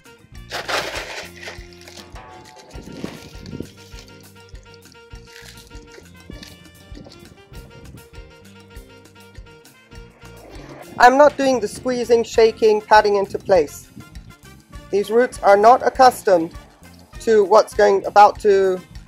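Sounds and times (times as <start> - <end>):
background music: 0.0 - 19.0
clay pebbles poured into plastic pot: 0.5 - 7.2
pebbles clinking: 0.5 - 7.3.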